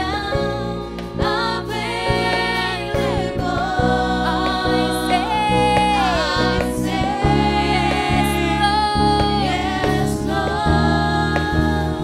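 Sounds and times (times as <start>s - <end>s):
keyboard chords: 0.0s - 12.0s
woman singing gospel: 0.0s - 12.0s.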